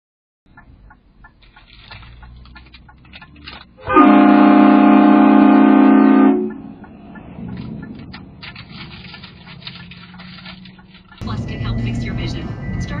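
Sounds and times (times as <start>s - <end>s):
train horn chord blast: 3.8s - 6.6s.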